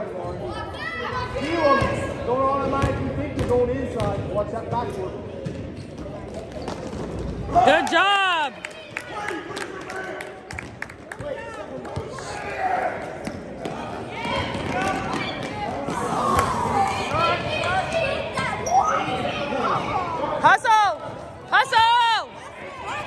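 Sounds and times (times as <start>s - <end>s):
basketball bouncing on court: 2.6s - 4.3s, 13.2s - 15.9s
sneakers squeaking: 2.8s - 7.6s, 17.1s - 20.0s.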